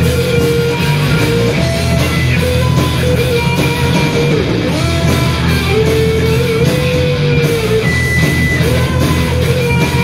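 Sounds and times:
electric guitars: 0.0 - 10.0
punk rock band playing: 0.0 - 10.0.

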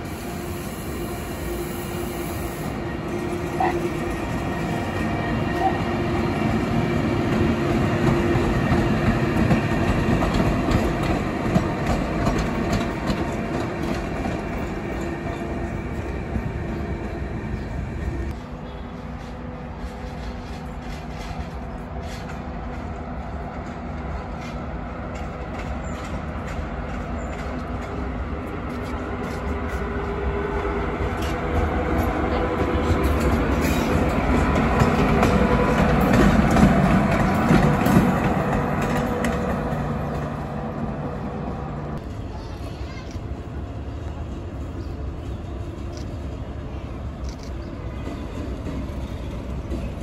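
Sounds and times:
electric locomotive machinery hum: 0.0 - 50.0
train wheels rumbling on rails: 0.0 - 50.0.

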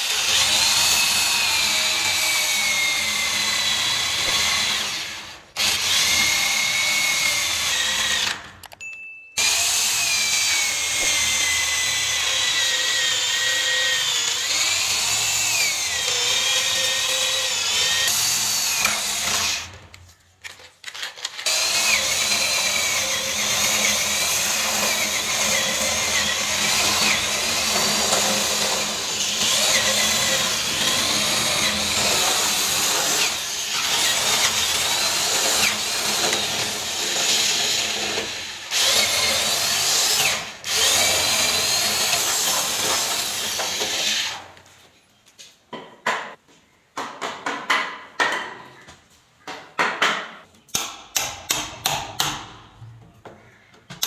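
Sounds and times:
electric drill boring into wood: 0.0 - 8.5, 9.4 - 19.8, 21.0 - 44.5.

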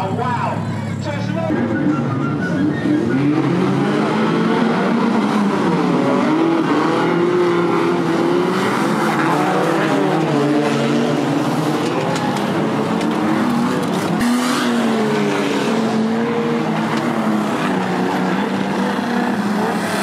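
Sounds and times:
race car engines revving: 0.0 - 20.0.

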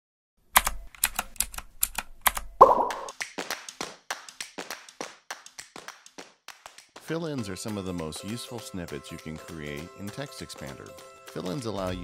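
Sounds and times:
sharp typing-like clicks: 0.6 - 3.1.

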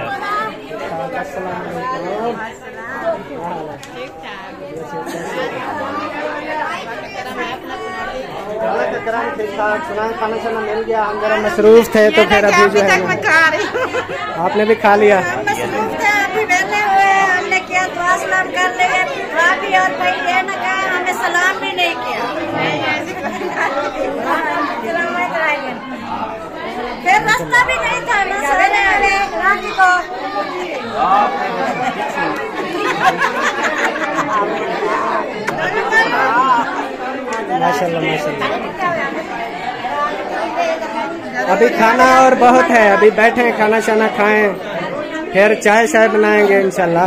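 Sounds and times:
crowd chatter: 0.0 - 47.0.

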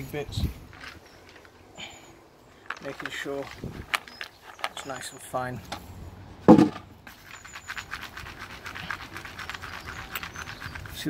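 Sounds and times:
loud thump: 6.4 - 6.9
grit rattling on sieve mesh: 7.1 - 11.0.

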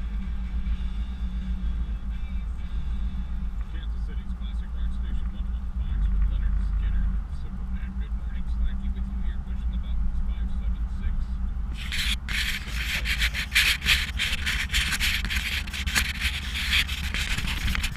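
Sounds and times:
scratchy handling noise on microphone: 11.7 - 17.9.

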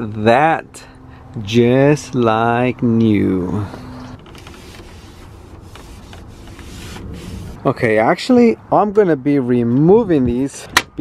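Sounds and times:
towel wiping plastic dashboard: 4.2 - 7.6.

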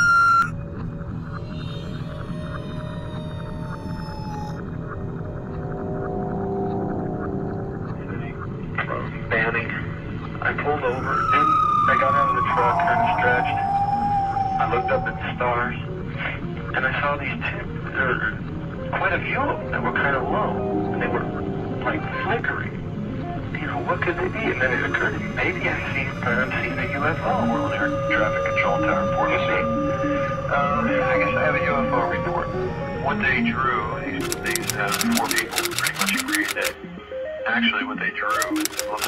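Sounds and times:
soundtrack music: 0.4 - 39.0
indistinct voices: 6.1 - 36.8
held sustained tones: 10.8 - 16.1, 19.4 - 35.2
siren-like falling tone: 10.9 - 15.4.

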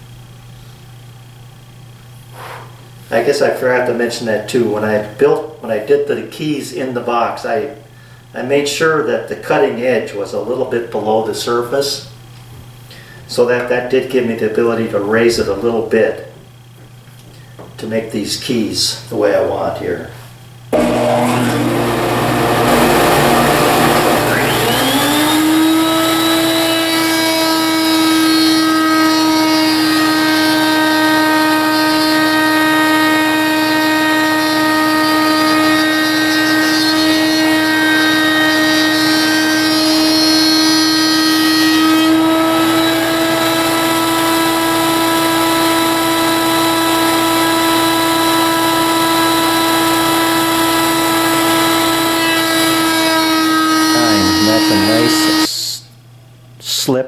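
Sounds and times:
router whine: 20.7 - 55.8.

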